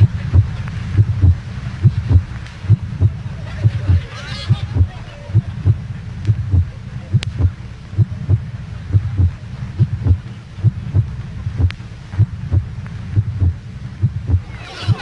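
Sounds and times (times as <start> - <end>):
faint low hum: 0.0 - 15.0
heartbeat-like low thumps: 0.0 - 15.0
laughter: 3.4 - 5.8, 14.5 - 15.0.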